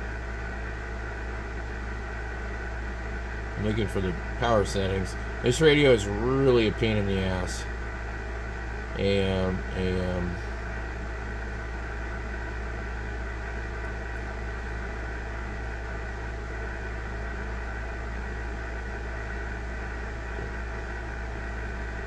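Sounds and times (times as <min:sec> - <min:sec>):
electrical hum with hiss: 0:00.0 - 0:22.0.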